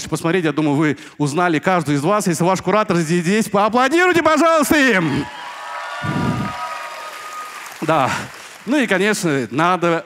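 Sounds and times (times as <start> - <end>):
audience applauding: 5.2 - 9.4.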